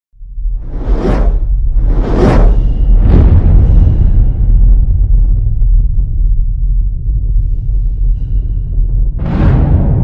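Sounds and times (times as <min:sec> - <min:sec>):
deep steady rumble: 0:00.1 - 0:10.0
rushing whoosh: 0:00.5 - 0:04.1.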